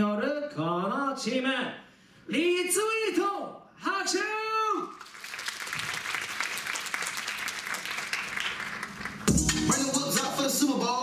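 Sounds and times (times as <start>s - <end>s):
audience applauding: 4.9s - 10.0s.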